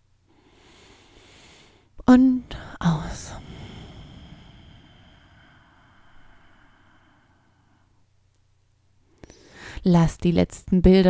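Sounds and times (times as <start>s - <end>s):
woman's faint in-breath: 2.5s - 8.0s, 9.2s - 9.8s.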